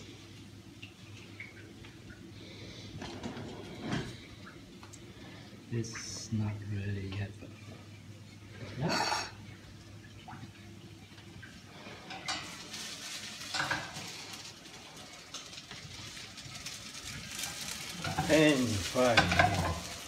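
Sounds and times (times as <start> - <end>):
noodles sizzling in oil: 11.5 - 20.0
utensil scraping in pan: 11.8 - 20.0.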